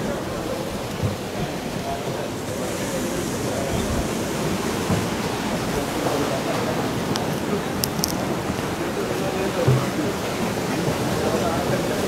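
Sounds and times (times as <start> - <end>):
sea waves breaking on rocks: 0.0 - 12.0.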